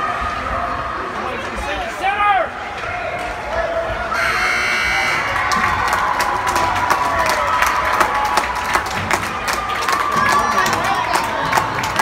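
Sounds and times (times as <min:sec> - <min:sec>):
spectators cheering and clapping: 0:02.2 - 0:12.0
electronic buzzer tone: 0:04.2 - 0:05.4.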